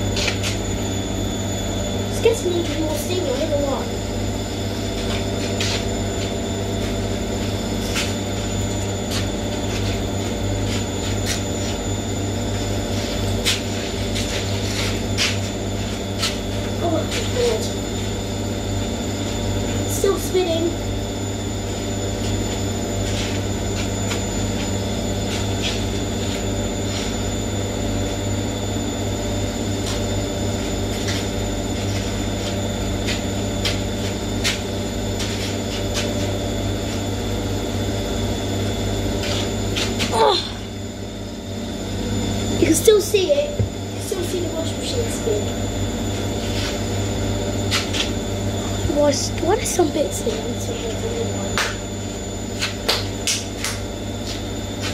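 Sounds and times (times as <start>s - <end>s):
washing machine spinning: 0.0s - 54.9s.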